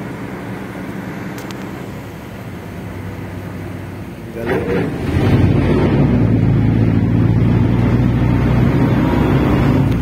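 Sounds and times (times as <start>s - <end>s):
engine humming steadily: 0.0s - 10.0s.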